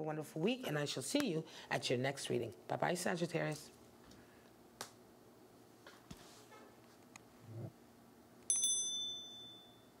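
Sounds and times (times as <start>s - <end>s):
high bell ding: 8.5s - 10.0s.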